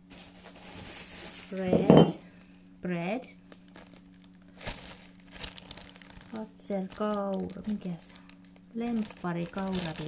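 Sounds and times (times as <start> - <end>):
plastic bag crinkling: 0.0 - 1.9, 3.5 - 10.0.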